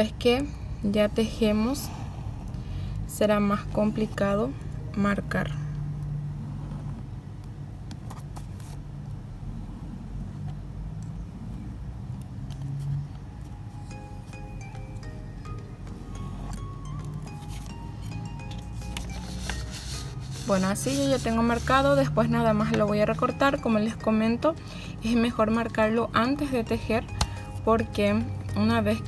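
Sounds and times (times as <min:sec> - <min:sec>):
soft background music: 0:00.0 - 0:29.0
pen scratching on paper: 0:19.2 - 0:22.0.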